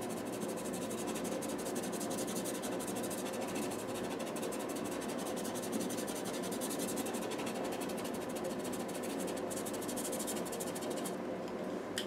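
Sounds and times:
pencil scratching on paper: 0:00.0 - 0:11.2.

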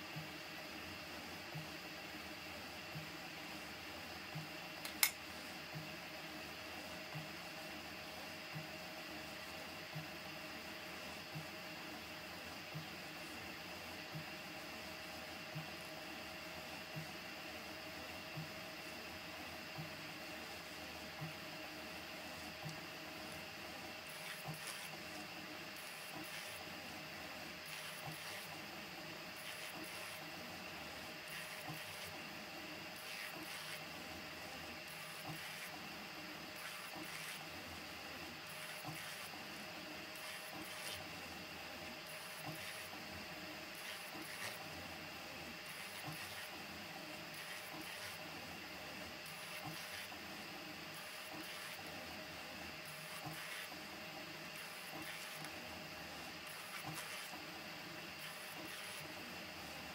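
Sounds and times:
whir of fans and motors: 0:00.0 - 0:59.9.

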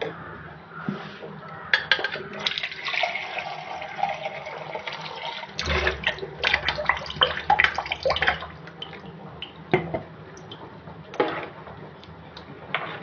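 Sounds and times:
tap water running into metal vessel: 0:02.4 - 0:09.0.

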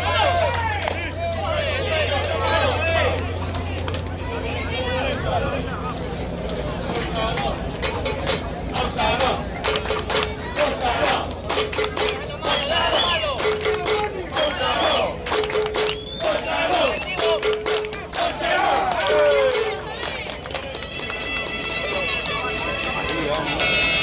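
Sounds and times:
spectators shouting and cheering: 0:00.0 - 0:24.0
sharp claps or bangs: 0:07.8 - 0:16.4.

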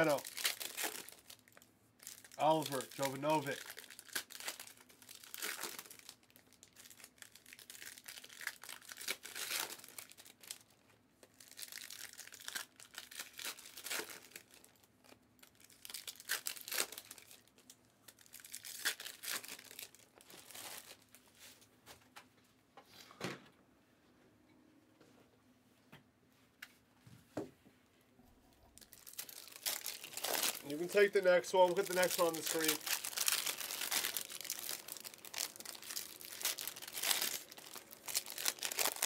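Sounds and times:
foil wrappers tearing and crinkling: 0:00.0 - 0:10.7, 0:11.3 - 0:21.2, 0:28.8 - 0:39.0.

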